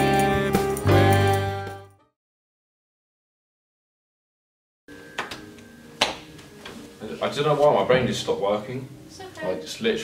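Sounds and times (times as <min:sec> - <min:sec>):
grand piano notes ringing: 0:04.9 - 0:09.1.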